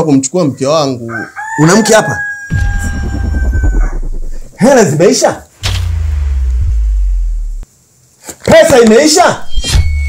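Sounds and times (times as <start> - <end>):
deep bass drone: 2.5 - 7.7.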